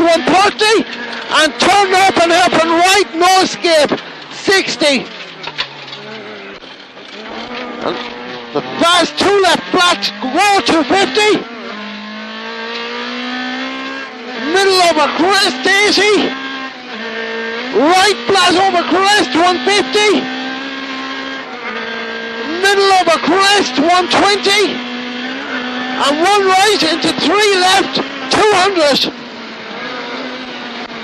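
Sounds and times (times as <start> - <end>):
car engine at high revs: 0.0 - 31.0
road noise: 0.0 - 31.0.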